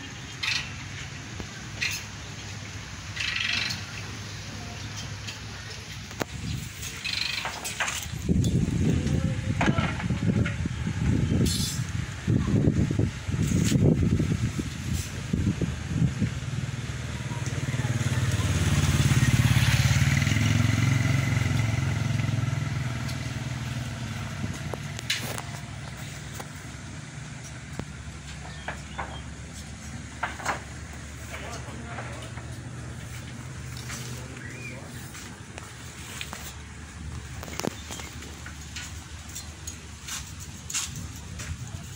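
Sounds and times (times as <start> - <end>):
vehicle engine hum: 0.0 - 41.9.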